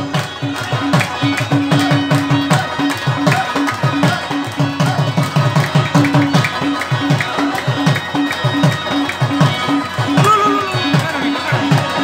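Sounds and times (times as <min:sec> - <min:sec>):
harmoniums: 0:00.0 - 0:12.0
rabab: 0:00.0 - 0:12.0
hand drum beat: 0:03.2 - 0:12.0.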